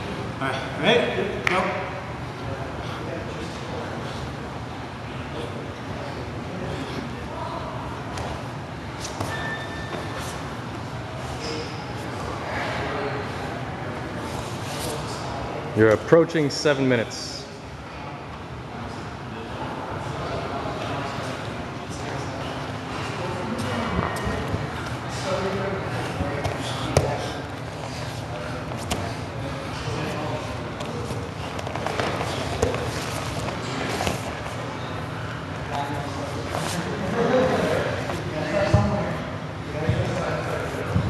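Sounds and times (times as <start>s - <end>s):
room noise: 0.0s - 41.0s.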